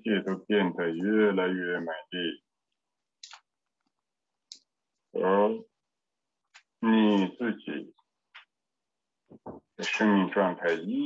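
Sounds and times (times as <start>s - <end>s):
man speaking slowly: 0.0s - 2.3s.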